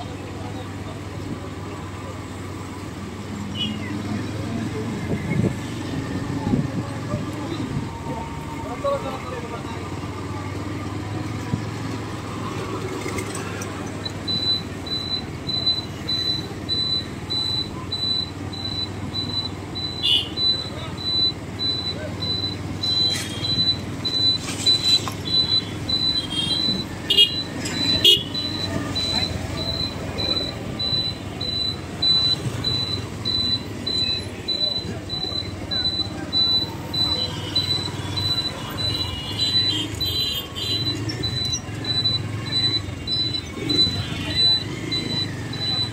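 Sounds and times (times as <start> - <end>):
vehicle motors running: 0.0 - 45.9
rapid high electronic beeping: 14.0 - 45.9
car horn toots: 20.0 - 20.4, 24.9 - 28.4, 37.1 - 41.0.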